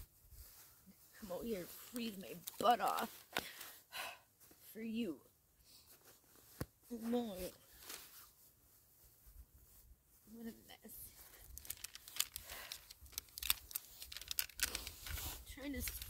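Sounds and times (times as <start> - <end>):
plastic crinkling: 1.7 - 3.6, 11.1 - 16.0
fishing tackle clicks: 11.6 - 15.2.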